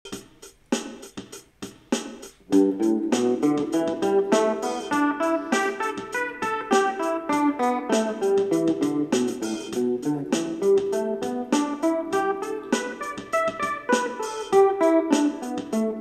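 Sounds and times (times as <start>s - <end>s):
backing beat clicks: 0.1s - 16.0s
electric guitar scale run: 2.6s - 16.0s.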